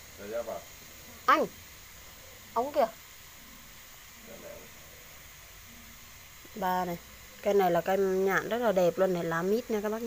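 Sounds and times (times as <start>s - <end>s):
steady background hiss: 0.0s - 10.0s.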